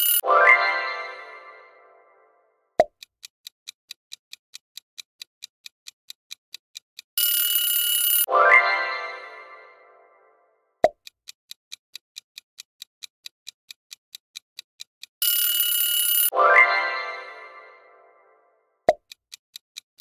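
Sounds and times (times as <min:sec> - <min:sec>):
ringing alarm: 0:00.0 - 0:01.1, 0:07.2 - 0:09.5, 0:15.2 - 0:17.0
clock ticking: 0:00.0 - 0:01.7, 0:02.8 - 0:10.0, 0:10.8 - 0:17.9, 0:18.9 - 0:20.0
rising musical sting: 0:08.3 - 0:10.3.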